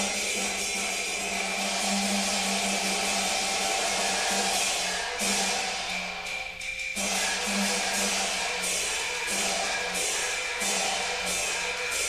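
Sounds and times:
music of sustained tones: 0.0s - 12.0s.

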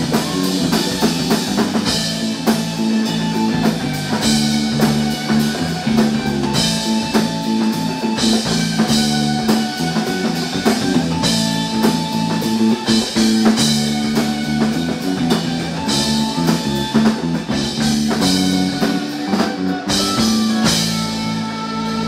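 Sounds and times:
funk band playing: 0.0s - 22.0s.

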